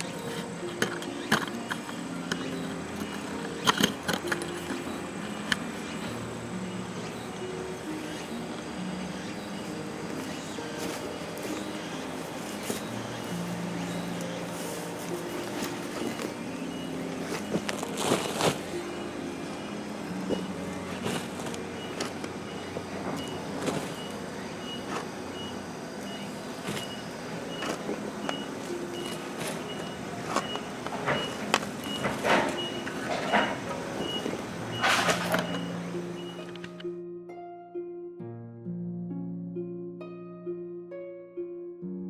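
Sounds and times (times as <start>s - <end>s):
soft background music: 0.0s - 42.0s
shovel scraping soil: 17.1s - 18.8s
faint high beep: 21.8s - 36.6s.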